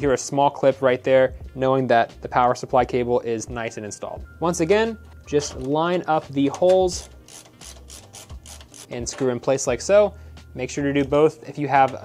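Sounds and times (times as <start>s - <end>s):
screwdriver clicking and scraping: 6.5s - 9.3s.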